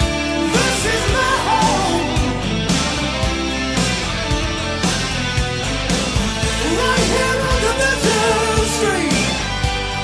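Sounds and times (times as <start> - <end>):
bending lead guitar line: 0.0 - 10.0
hard rock band playing: 0.0 - 10.0.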